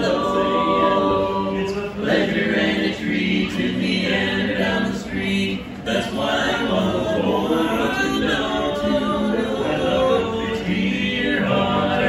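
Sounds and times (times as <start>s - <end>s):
men singing in close harmony: 0.0s - 12.0s.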